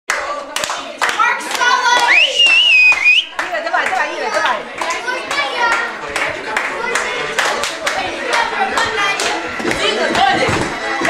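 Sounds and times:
hands clapping: 0.1s - 11.0s.

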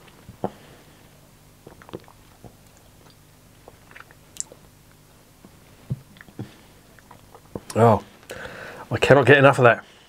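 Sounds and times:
wet lip smacks: 1.7s - 4.6s.

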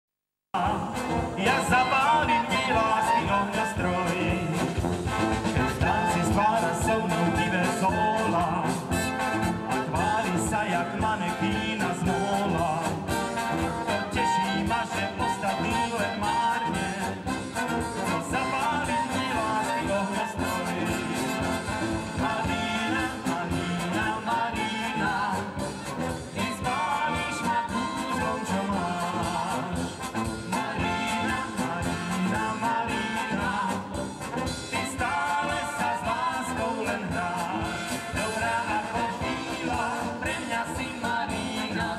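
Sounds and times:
brass band playing dance music: 0.5s - 41.9s.

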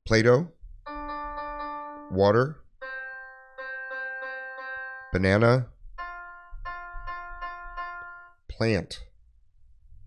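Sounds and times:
electronic piano notes: 0.9s - 8.5s.

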